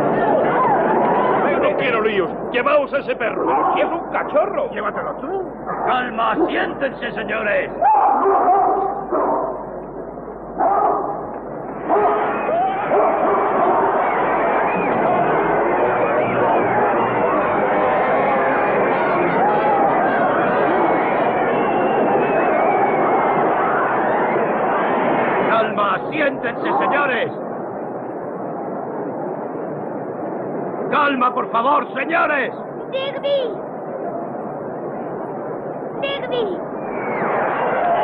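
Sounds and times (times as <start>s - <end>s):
crowd shouting and screaming: 0.0s - 2.2s, 7.8s - 9.7s, 11.2s - 25.7s, 36.0s - 38.0s.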